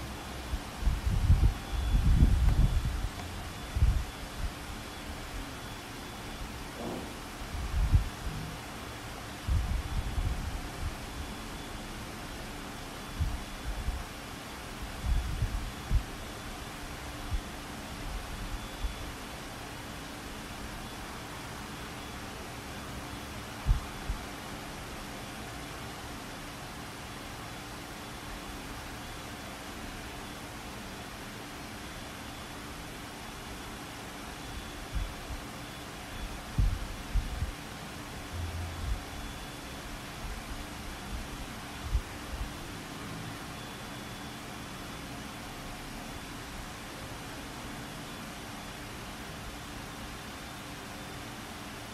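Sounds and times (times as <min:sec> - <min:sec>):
faint hum: 0:00.0 - 0:51.9
microphone hiss: 0:00.0 - 0:51.9.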